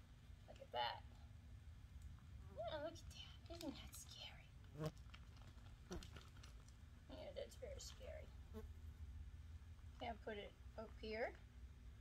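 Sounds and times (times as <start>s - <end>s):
mask crinkling: 3.5s - 6.8s.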